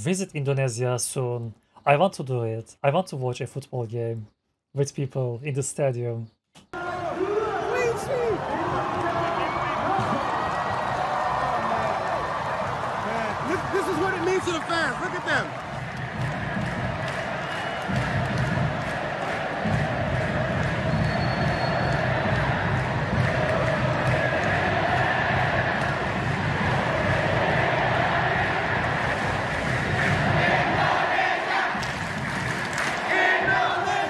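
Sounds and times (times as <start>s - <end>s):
stadium crowd chanting and singing: 6.8s - 34.0s.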